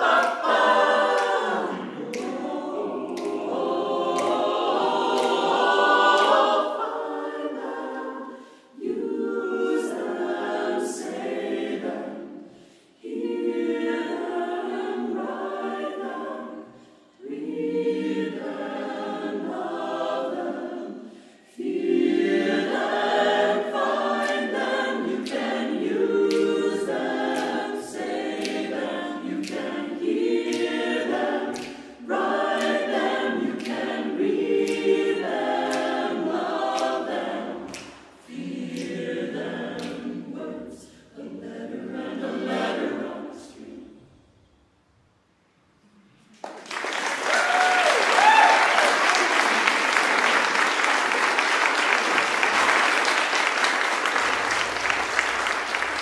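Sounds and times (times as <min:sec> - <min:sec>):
mixed choir singing a cappella: 0:00.0 - 0:44.9, 0:47.4 - 0:56.0.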